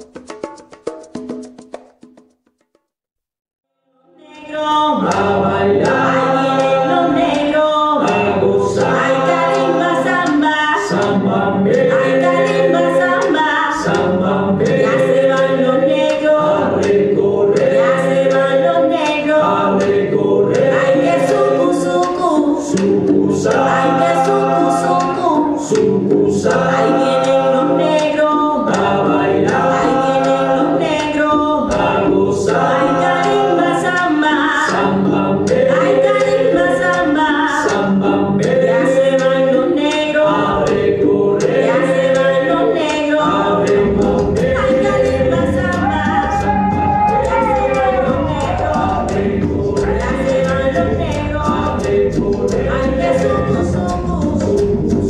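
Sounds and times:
percussion beat: 0:00.0 - 0:02.9, 0:04.8 - 0:55.0
chorus singing: 0:04.1 - 0:55.0.

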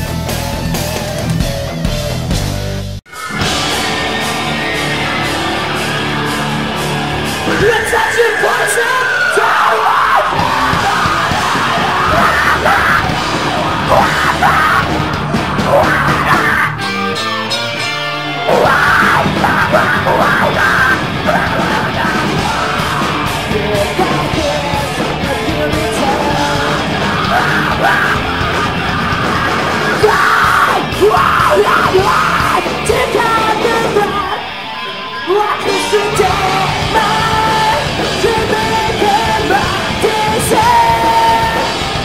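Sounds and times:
distorted guitars: 0:00.0 - 0:42.0
drums: 0:00.0 - 0:42.0
screamo band playing: 0:00.0 - 0:42.0
yelled voices: 0:03.1 - 0:17.2, 0:18.3 - 0:42.0.

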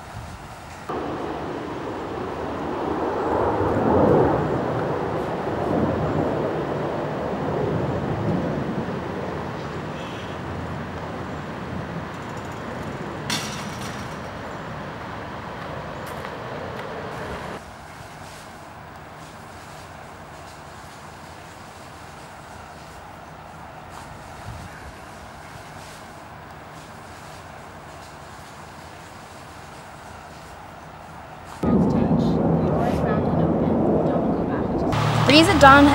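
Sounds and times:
loud rumbling: 0:00.9 - 0:09.5, 0:31.6 - 0:35.9.

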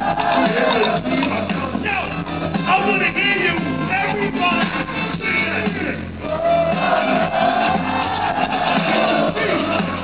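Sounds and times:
live hip-hop band music: 0:00.0 - 0:10.0.

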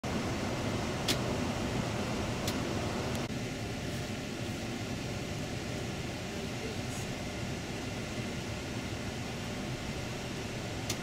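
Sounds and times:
bus engine and tyre rumble: 0:00.0 - 0:11.0.

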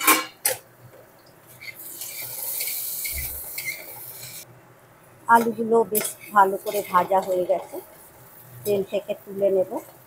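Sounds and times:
potato wedges sizzling in oil: 0:01.4 - 0:04.5, 0:05.2 - 0:10.0
spatula scraping a pan: 0:01.5 - 0:04.4, 0:05.4 - 0:08.7.

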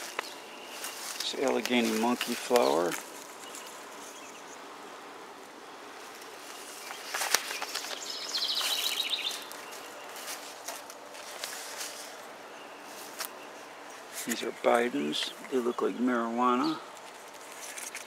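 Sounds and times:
insects: 0:00.0 - 0:18.0
rustling and clicks: 0:05.4 - 0:12.3, 0:16.9 - 0:18.0.

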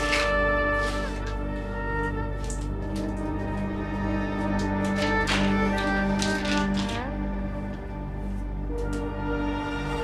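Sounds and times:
droning string music: 0:00.0 - 0:10.0.

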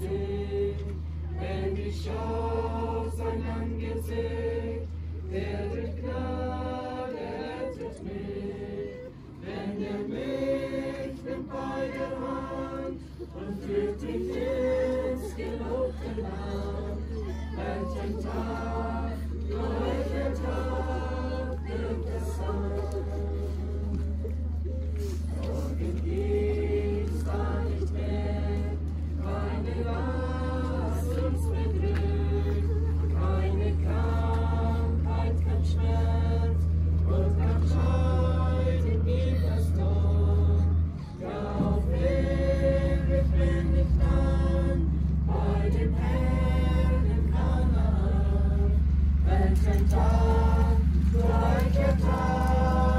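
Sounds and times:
congregation singing a hymn: 0:00.0 - 0:24.4, 0:25.0 - 0:52.9
low rumble: 0:00.0 - 0:52.9
steady low hum: 0:00.0 - 0:52.9.

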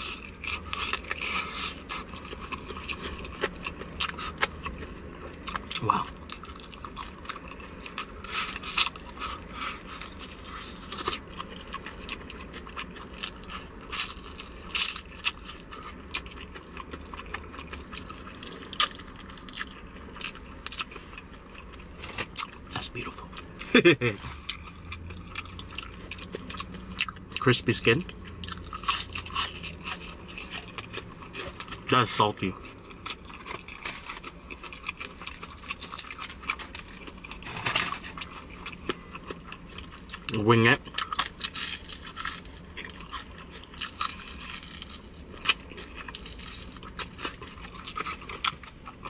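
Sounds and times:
chewing with crackles: 0:00.0 - 0:49.0
crunching fried chicken: 0:00.0 - 0:49.0.

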